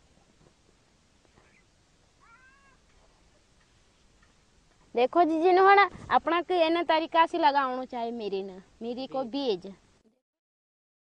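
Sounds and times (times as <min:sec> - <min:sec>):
faint animal call: 0:01.3 - 0:03.2.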